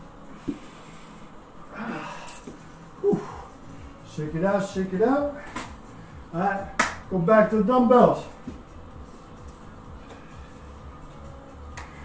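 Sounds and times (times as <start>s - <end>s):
man breathing hard: 0.3s - 4.0s, 5.3s - 6.3s, 9.8s - 12.0s
man talking: 4.1s - 5.4s, 6.3s - 8.4s.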